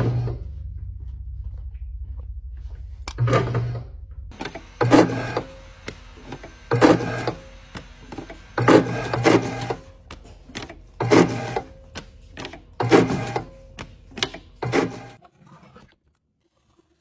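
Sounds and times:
electric paper punch motor: 0:04.3 - 0:15.2.

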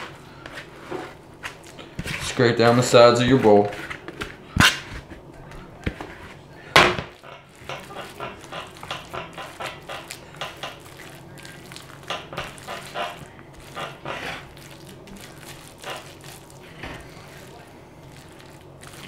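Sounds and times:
spatula scraping: 0:00.0 - 0:06.4, 0:07.2 - 0:19.0.

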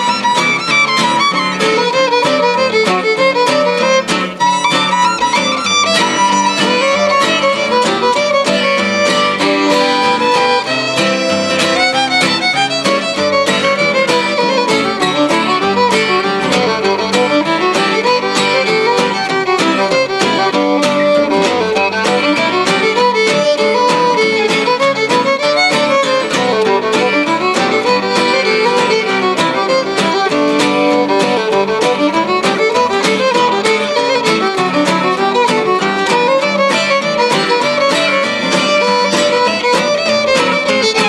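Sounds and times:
acoustic guitars strumming: 0:00.0 - 0:41.0
fiddle playing quick melody: 0:00.0 - 0:41.0.

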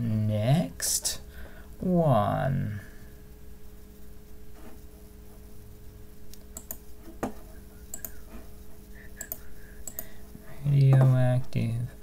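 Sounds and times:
faint steady hum: 0:00.0 - 0:12.0
keyboard and mouse clicks: 0:06.4 - 0:08.2, 0:09.1 - 0:10.1.

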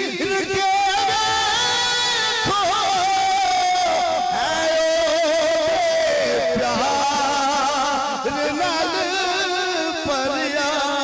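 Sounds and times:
man singing devotional song: 0:00.0 - 0:11.0.

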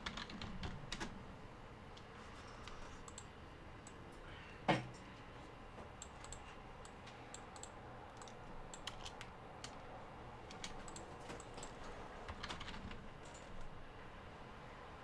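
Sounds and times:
keyboard typing: 0:00.0 - 0:01.2, 0:06.0 - 0:09.8, 0:10.4 - 0:13.7.

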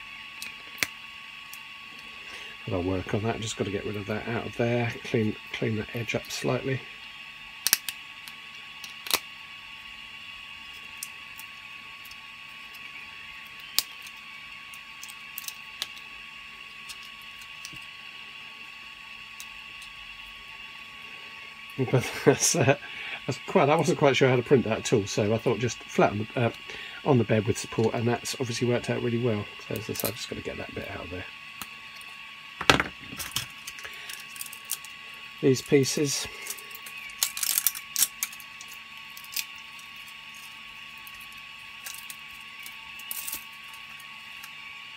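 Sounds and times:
machine fan whirring: 0:00.0 - 0:44.9
plastic cracking: 0:36.4 - 0:43.8.

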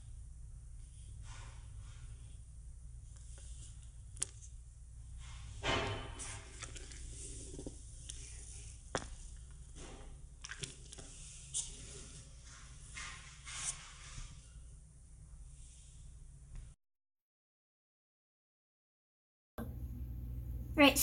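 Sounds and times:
faint low hum: 0:00.0 - 0:16.8, 0:19.6 - 0:21.0
rope rustling and sliding: 0:06.2 - 0:14.6.

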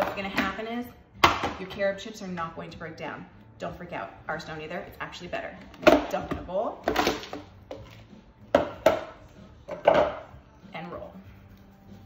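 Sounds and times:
plastic bowl knocking: 0:05.7 - 0:10.2.

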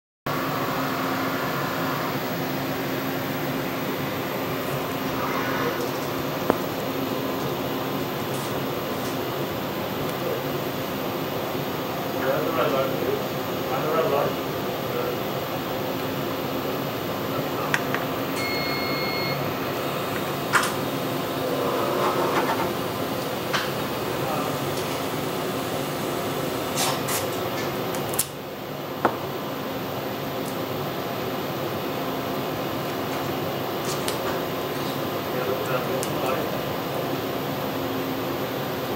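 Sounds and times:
steady machine hum: 0:00.3 - 0:38.9
electronic beep: 0:18.3 - 0:19.5.

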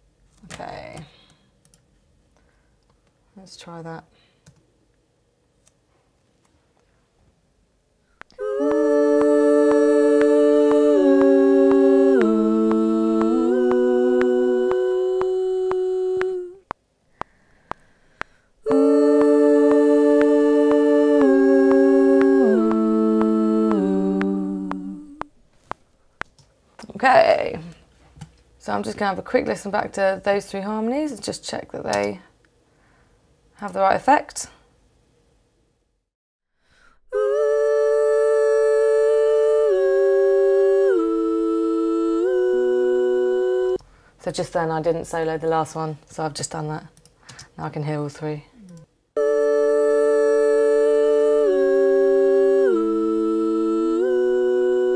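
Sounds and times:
layered female vocal harmony: 0:08.2 - 0:16.7, 0:17.6 - 0:25.4, 0:37.1 - 0:45.5, 0:47.7 - 0:54.9
woman humming long notes: 0:08.3 - 0:16.7, 0:18.6 - 0:25.4, 0:37.1 - 0:43.8, 0:48.6 - 0:54.9.

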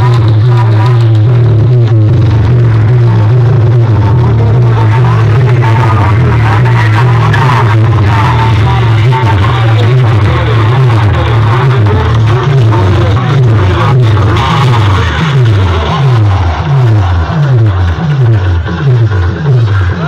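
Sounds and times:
loud bass-heavy dj music: 0:00.0 - 0:20.0.

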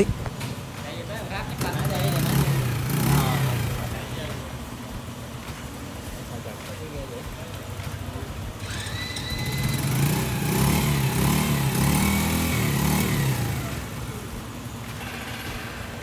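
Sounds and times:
small motorcycle engine revving: 0:01.2 - 0:06.2, 0:07.2 - 0:16.0.

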